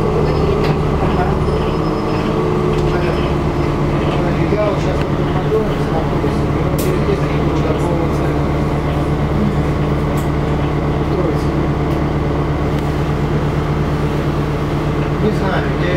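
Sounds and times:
bus engine drone: 0:00.0 - 0:15.9.

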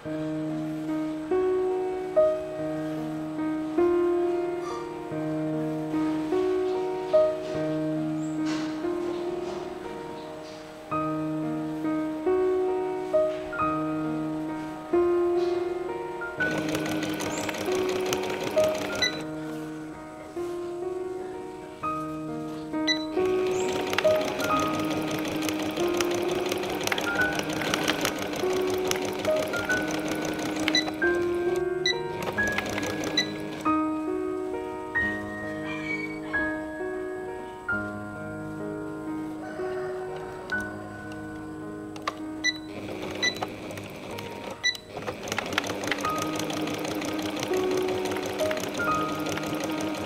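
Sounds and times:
background music: 0:00.0 - 0:50.0
sewing machine stitching: 0:16.4 - 0:19.3, 0:22.9 - 0:33.8, 0:42.4 - 0:50.0
sharp clicks: 0:22.9 - 0:33.7.

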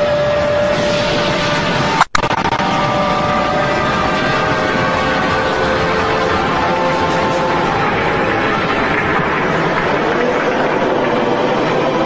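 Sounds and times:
cartoon energy blast rush: 0:00.0 - 0:12.0
steady pitched whine: 0:00.0 - 0:12.0.

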